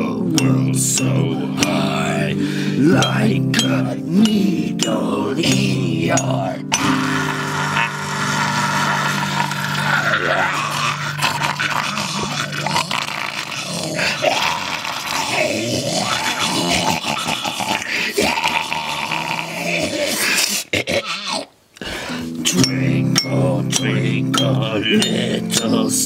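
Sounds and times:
man growling and shrieking: 5.4s - 21.6s.

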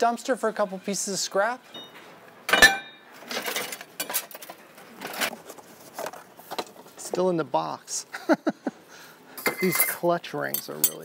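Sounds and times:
metal scraping and rattling: 2.5s - 6.2s.

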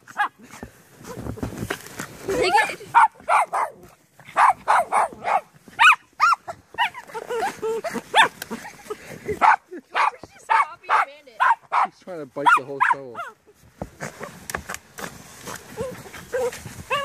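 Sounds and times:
small dogs barking: 2.9s - 8.4s, 9.4s - 13.4s, 15.8s - 17.0s.

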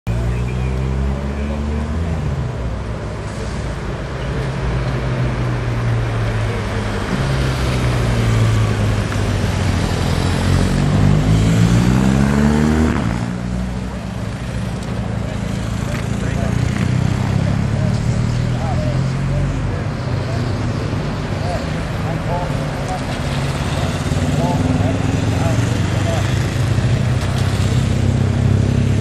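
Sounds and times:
motorcycle engines running: 3.9s - 29.0s
motorcycle accelerating: 4.0s - 29.0s.

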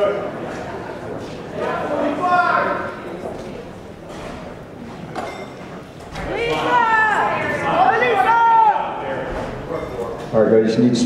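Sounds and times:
crowd murmur: 0.0s - 11.0s
shrill shout from audience: 6.3s - 9.0s.

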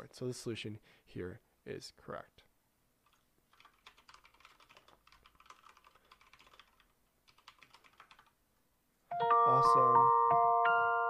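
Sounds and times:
typing on a keyboard: 3.0s - 8.4s.

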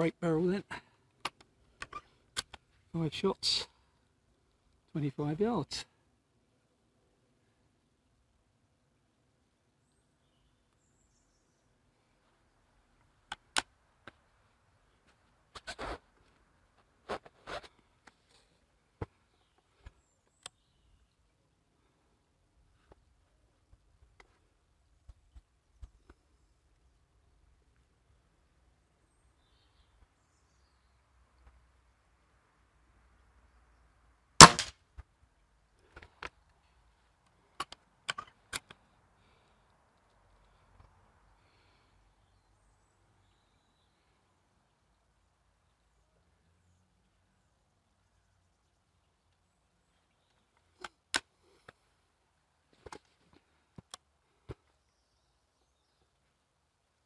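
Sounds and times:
air rifle shot crack: 34.4s - 34.7s
rifle handling clicks and knocks: 34.4s - 34.7s, 37.6s - 38.8s
sharp snap: 34.4s - 34.7s.

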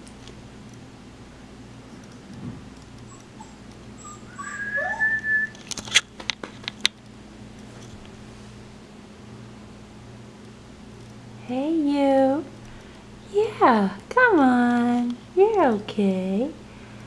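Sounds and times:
puppy whining: 3.0s - 5.7s.

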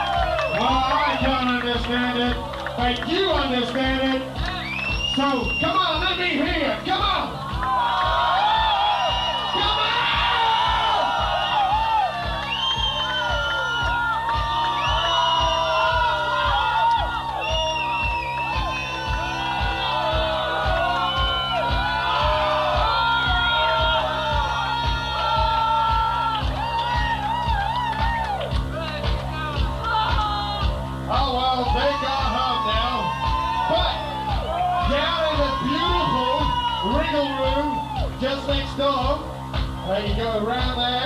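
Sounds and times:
crowd shouting and whooping: 0.0s - 41.0s
loud music with steady beat: 0.0s - 41.0s.

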